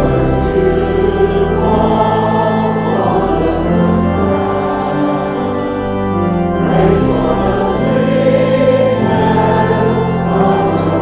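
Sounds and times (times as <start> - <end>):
congregation singing a hymn: 0.0 - 11.0
low held accompaniment notes: 0.0 - 11.0.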